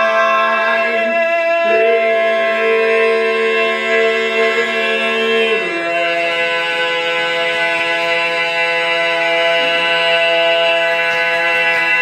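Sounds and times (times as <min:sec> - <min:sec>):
male quartet singing a cappella: 0:00.0 - 0:12.0.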